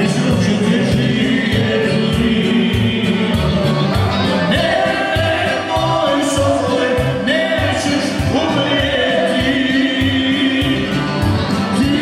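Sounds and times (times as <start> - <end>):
men singing in chorus: 0.0 - 3.6, 4.5 - 11.0
accordion: 0.0 - 12.0
bass line: 0.0 - 12.0.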